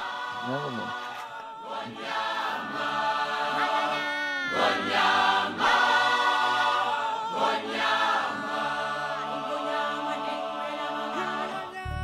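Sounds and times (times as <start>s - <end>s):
choir singing long notes: 0.0s - 12.0s.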